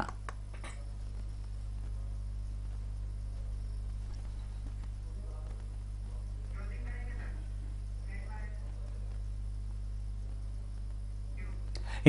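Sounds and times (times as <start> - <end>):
low electrical hum: 0.0 - 12.0
faint clicks: 3.8 - 5.8.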